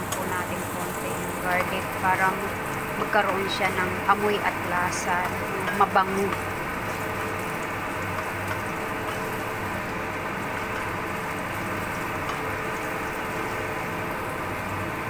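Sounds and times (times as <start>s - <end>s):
garlic sizzling in hot oil: 0.0s - 15.0s.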